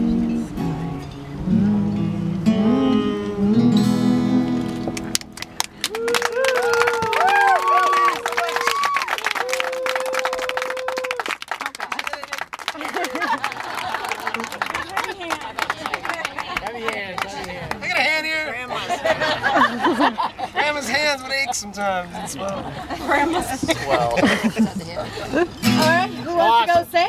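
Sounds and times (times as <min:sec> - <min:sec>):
acoustic guitar chord ringing: 0:00.0 - 0:05.2, 0:25.6 - 0:26.6
audience clapping: 0:04.7 - 0:18.1
whoops and cheers: 0:05.8 - 0:11.3.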